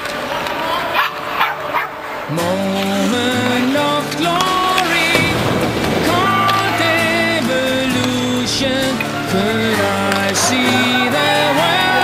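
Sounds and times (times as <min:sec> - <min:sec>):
background music with held notes: 0:02.3 - 0:12.0.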